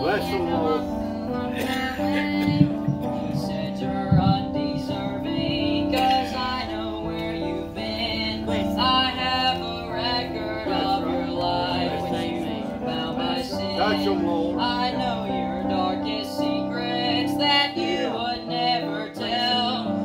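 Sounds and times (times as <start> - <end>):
instrumental accompaniment: 0.0 - 20.0
young voices singing in unison: 0.0 - 20.0.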